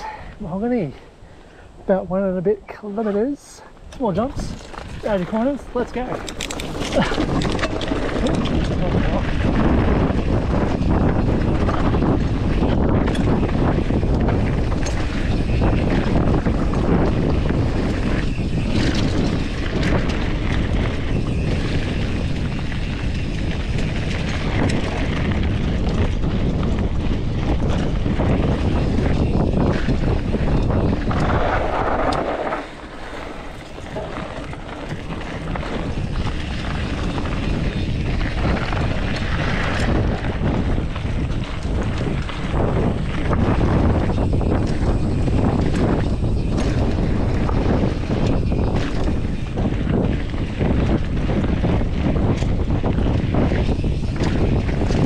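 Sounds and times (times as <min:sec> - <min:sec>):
wind buffeting microphone: 0:00.0 - 0:55.0
bike tyres crunching over dirt: 0:02.7 - 0:55.0.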